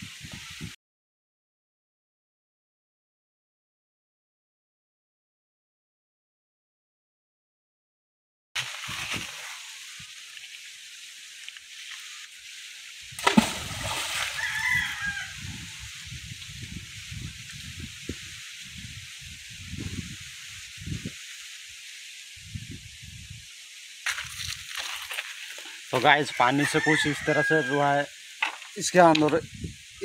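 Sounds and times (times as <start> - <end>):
steady outdoor hiss: 8.6 - 30.0
brick splashing into water: 13.2 - 14.8.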